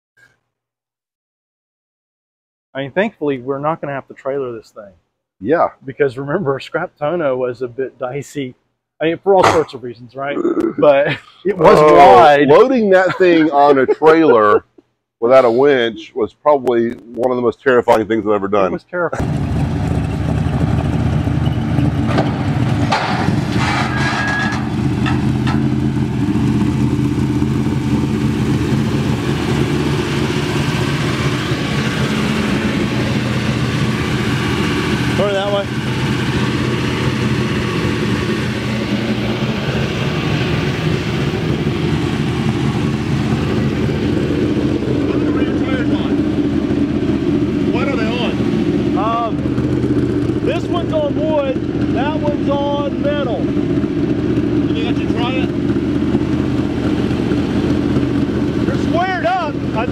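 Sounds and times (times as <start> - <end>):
voices: 2.8 - 19.2, 35.1 - 35.7, 44.9 - 46.3, 47.6 - 49.6, 50.3 - 53.5, 54.6 - 55.5, 58.6 - 59.9
race car engine idling: 19.2 - 59.9.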